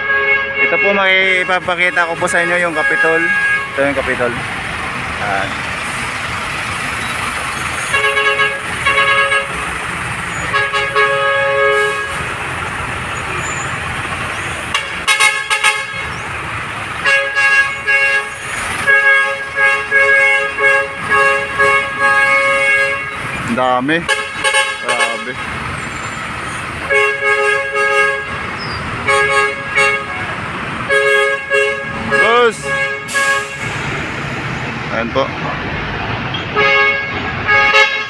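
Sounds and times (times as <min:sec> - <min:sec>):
truck horns tooting: 0:00.0 - 0:34.1, 0:36.0 - 0:38.0
heavy truck engines running: 0:00.0 - 0:38.0.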